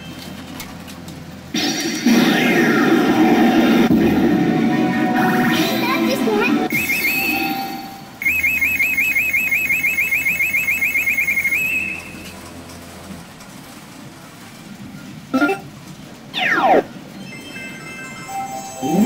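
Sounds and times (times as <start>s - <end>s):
rapid warbling electronic beep: 6.7s - 12.1s.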